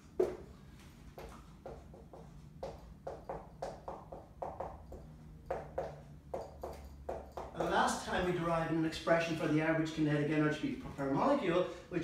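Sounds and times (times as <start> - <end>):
marker writing on whiteboard: 0.0 - 8.3
low steady hum: 0.0 - 12.0.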